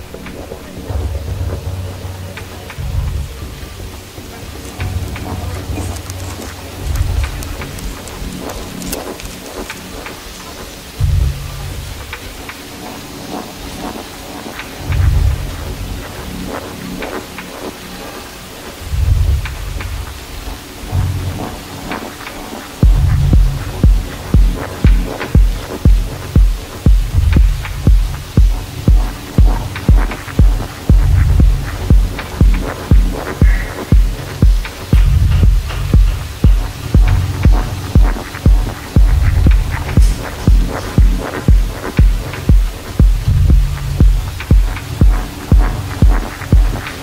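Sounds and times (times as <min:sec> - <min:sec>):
deep bass notes: 0:00.0 - 0:09.3, 0:10.8 - 0:12.2, 0:14.8 - 0:17.0, 0:18.8 - 0:21.6, 0:22.8 - 0:47.0
deep rumbling swells: 0:00.0 - 0:09.3, 0:18.8 - 0:21.4, 0:22.8 - 0:47.0
hissing rain-like noise: 0:00.0 - 0:47.0.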